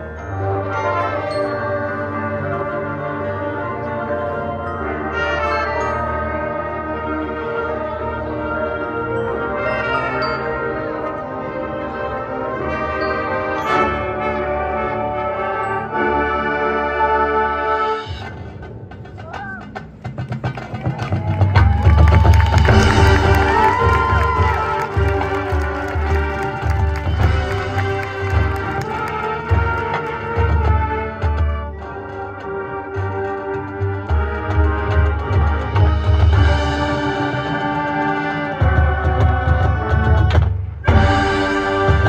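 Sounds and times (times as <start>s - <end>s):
marching band playing: 0.0s - 42.0s
percussion hits: 18.1s - 42.0s.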